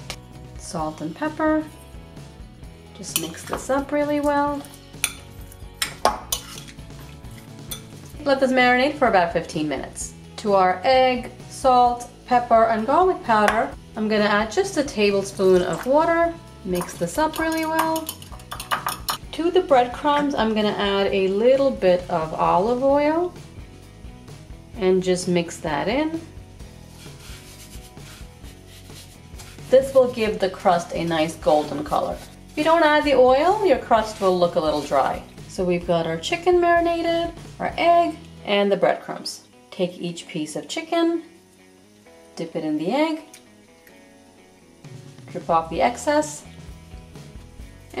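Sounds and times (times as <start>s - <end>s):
raw chicken being stirred: 3.0s - 8.3s, 15.2s - 19.2s, 26.7s - 35.6s
utensil clinking against bowl: 16.8s - 19.2s.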